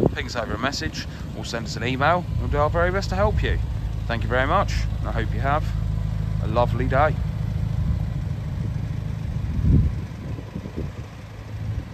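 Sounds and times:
car engine idling: 0:00.0 - 0:11.9
low engine rumble: 0:00.0 - 0:11.9.

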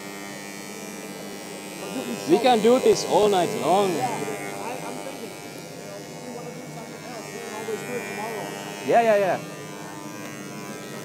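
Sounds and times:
electric engraving pen buzzing: 0:00.0 - 0:11.0.

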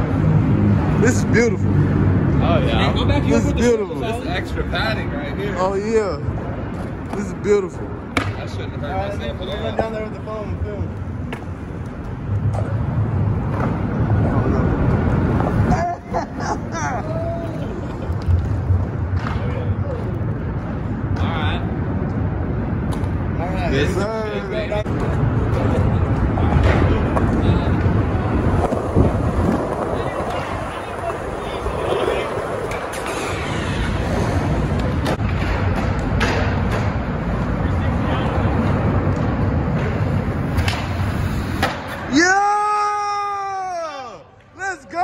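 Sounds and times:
steady low rumble: 0:24.5 - 0:32.7.

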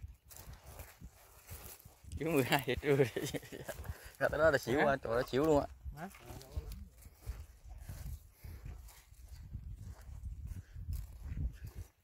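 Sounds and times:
footsteps on dry grass and twigs: 0:00.0 - 0:12.0.

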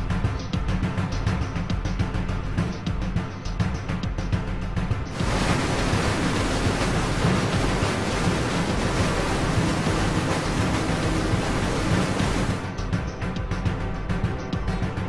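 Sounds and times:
music: 0:00.0 - 0:15.0
slurry gushing from a pipe: 0:05.1 - 0:12.7.

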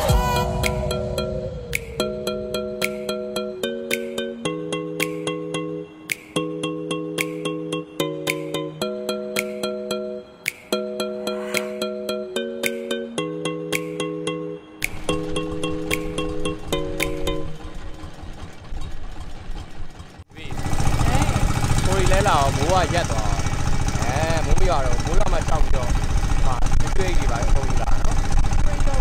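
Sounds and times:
background music with held chords: 0:00.0 - 0:18.2
boat outboard engine running: 0:14.8 - 0:29.0
voices: 0:20.3 - 0:29.0.

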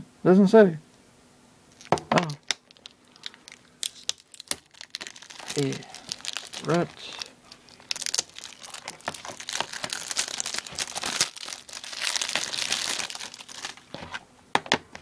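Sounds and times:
plastic wrap crinkling and tearing: 0:01.7 - 0:14.2.

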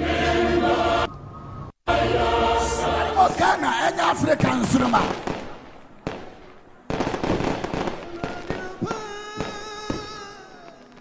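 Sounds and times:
voice or music: 0:01.9 - 0:05.1
fireworks cracking and popping: 0:05.0 - 0:11.0.

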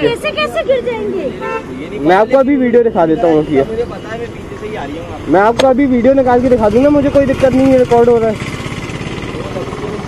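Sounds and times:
people talking: 0:00.0 - 0:08.4
vehicle horn toot: 0:01.4 - 0:01.8.

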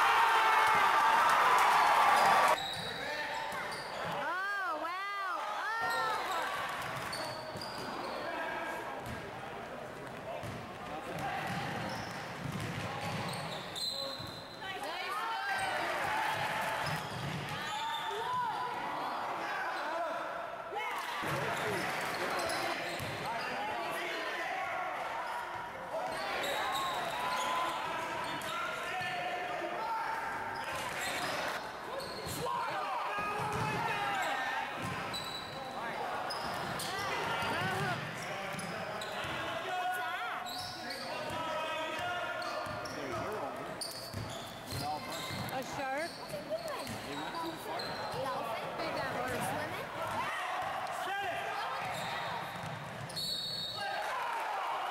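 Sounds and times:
people shouting and talking: 0:00.0 - 0:54.9.

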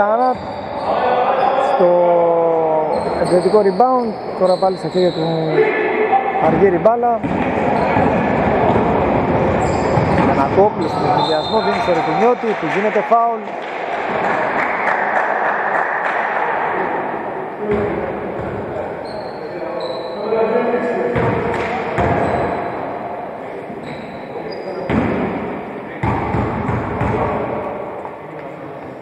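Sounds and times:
voices echoing in a hall: 0:00.0 - 0:29.0.

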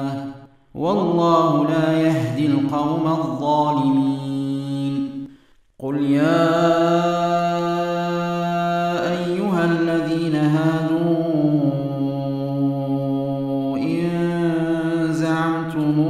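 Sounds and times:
man chanting recitation: 0:00.0 - 0:16.0.

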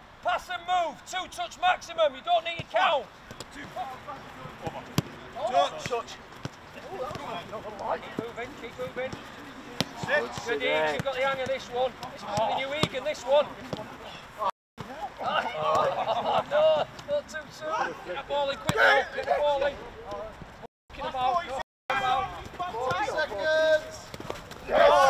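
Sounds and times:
players shouting: 0:00.2 - 0:20.3, 0:20.9 - 0:25.0
football kicked thuds: 0:09.8 - 0:13.0.

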